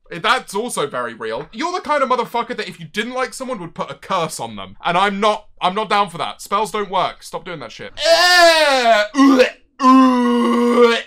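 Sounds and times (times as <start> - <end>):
man wailing: 8.0 - 11.0.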